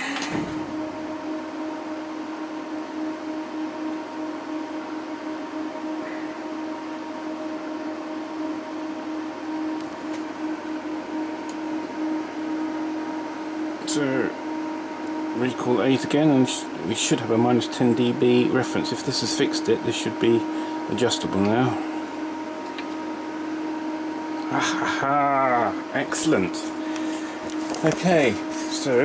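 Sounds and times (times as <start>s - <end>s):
cooling fan humming: 0.0s - 29.0s.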